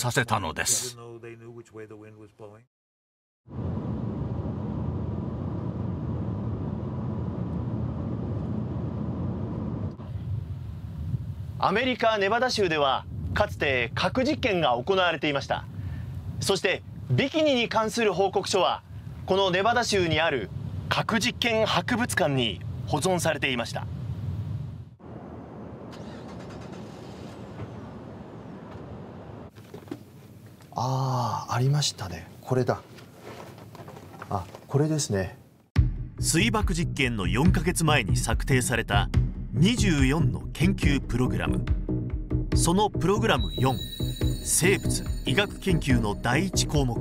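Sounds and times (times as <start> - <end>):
car road rumble: 3.5 - 11.6, 23.9 - 30.7.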